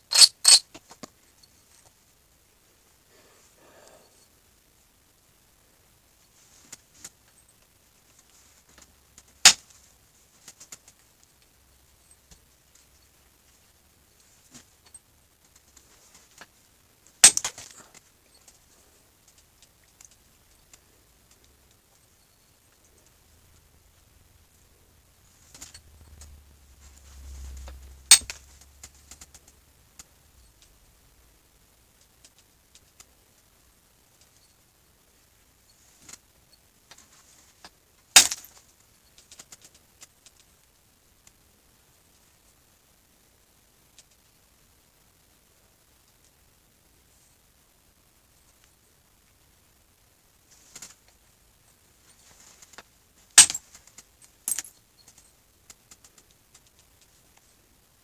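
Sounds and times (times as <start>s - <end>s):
faint scratching and handling: 6.1s - 30.8s, 34.1s - 40.7s, 50.4s - 57.8s.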